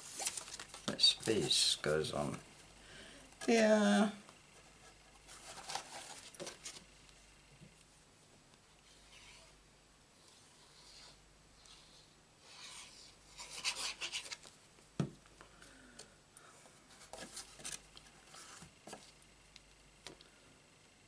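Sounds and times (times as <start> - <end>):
paper rustling and sliding: 0.0 - 1.8, 4.8 - 6.9, 16.9 - 19.2.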